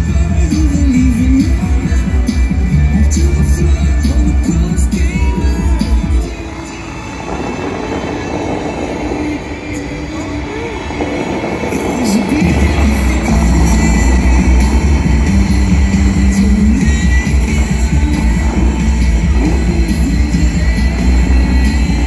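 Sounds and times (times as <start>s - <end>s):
show music over loudspeakers: 0.0s - 22.0s
water jets spraying: 0.0s - 22.0s.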